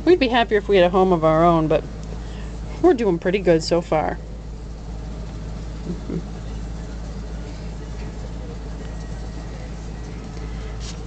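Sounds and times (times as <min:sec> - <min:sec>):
cat purring: 0:05.7 - 0:06.8.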